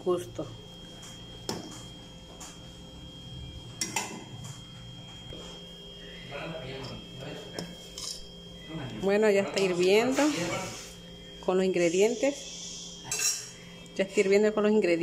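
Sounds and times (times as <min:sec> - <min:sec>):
faint steady hum: 0:00.0 - 0:15.0
metal spoon clinking on pot: 0:08.0 - 0:08.3, 0:13.1 - 0:13.5.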